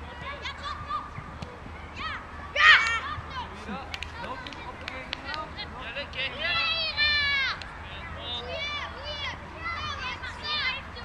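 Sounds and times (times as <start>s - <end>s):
children calling out: 1.9s - 4.4s, 6.4s - 7.7s, 8.4s - 11.0s
child shouting high-pitched: 2.0s - 3.4s.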